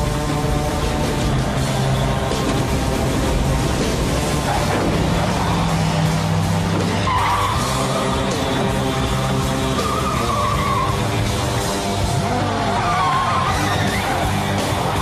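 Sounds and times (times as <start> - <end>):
car noise: 0.0 - 15.0
dramatic music: 0.0 - 15.0
tyres squealing: 1.2 - 15.0.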